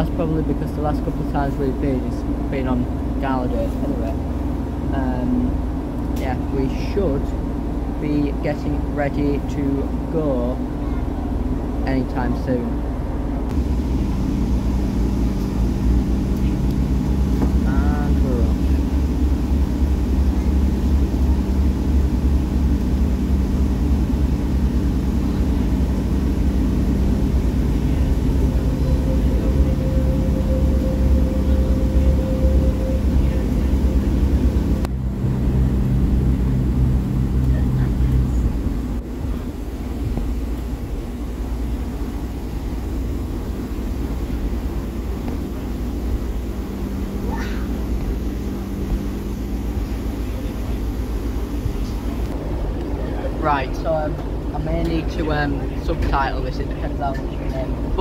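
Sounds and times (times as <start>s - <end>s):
diesel engine rumbling: 0.0s - 58.0s
faint steady tone: 23.1s - 38.4s.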